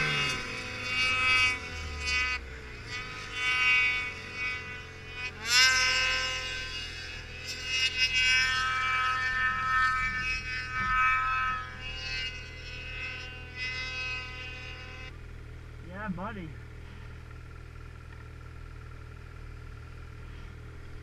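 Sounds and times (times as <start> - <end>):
snowmobile engine at high revs: 0.0 - 21.0.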